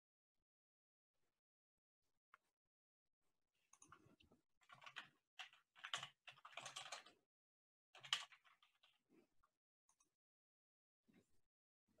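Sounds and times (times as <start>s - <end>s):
faint keyboard typing: 3.7s - 7.2s, 8.0s - 9.0s.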